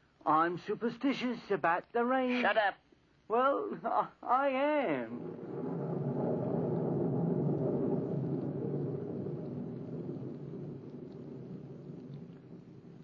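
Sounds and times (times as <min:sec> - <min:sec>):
low roll of thunder: 0:04.8 - 0:13.0.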